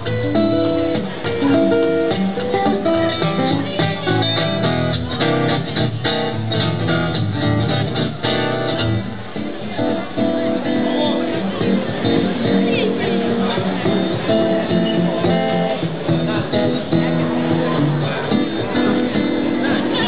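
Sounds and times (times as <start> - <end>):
acoustic guitar playing: 0.0 - 20.0.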